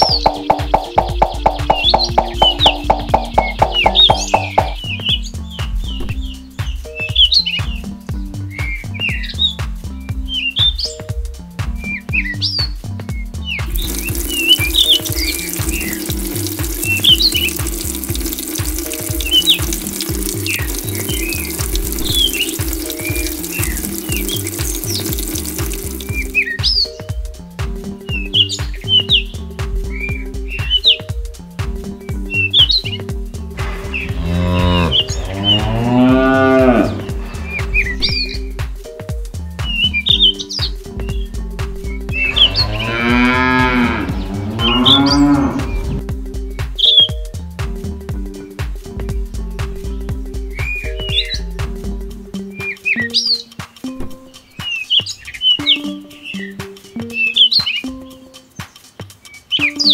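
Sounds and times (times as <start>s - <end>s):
water trickling into basin: 0.0s - 4.8s, 13.7s - 26.9s, 42.1s - 46.0s
high chirps: 0.0s - 7.9s, 13.6s - 27.4s, 52.4s - 59.9s
background music with steady beat: 0.0s - 59.9s
cow mooing: 34.1s - 37.1s, 42.3s - 45.8s.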